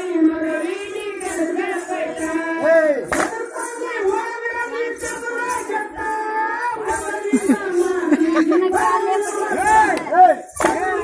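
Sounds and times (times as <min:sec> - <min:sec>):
men chanting and calling out: 0:00.0 - 0:11.0.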